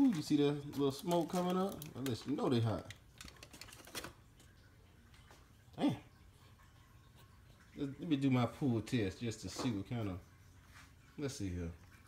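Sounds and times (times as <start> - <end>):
aluminium foil crinkling: 0.0 - 4.7.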